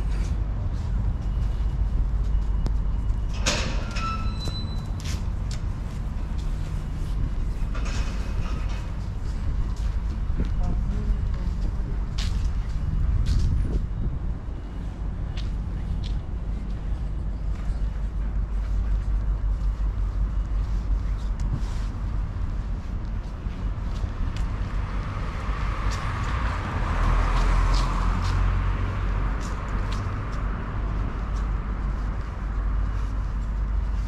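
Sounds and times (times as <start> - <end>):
city traffic rumble: 0.0 - 34.0.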